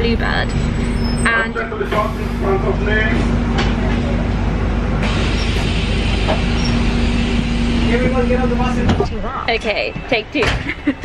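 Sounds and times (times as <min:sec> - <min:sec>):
bus engine rumble: 0:00.0 - 0:11.0
constant low hum: 0:00.0 - 0:11.0.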